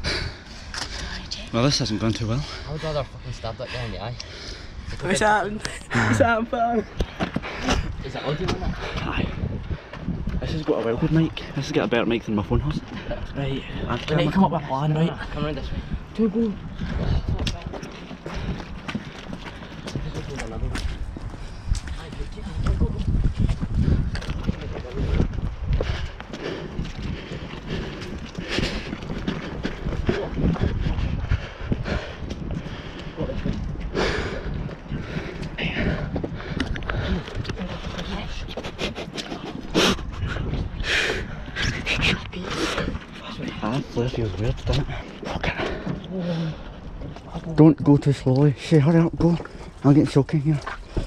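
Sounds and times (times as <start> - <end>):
wind on microphone: 4.3 - 11.6, 15.1 - 47.5.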